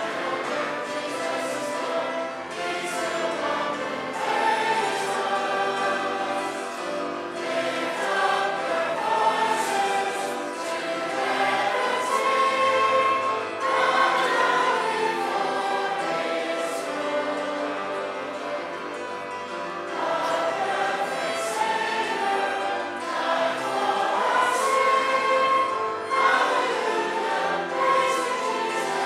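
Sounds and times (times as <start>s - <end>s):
congregation singing a hymn: 0.0s - 29.0s
musical accompaniment: 0.0s - 29.0s.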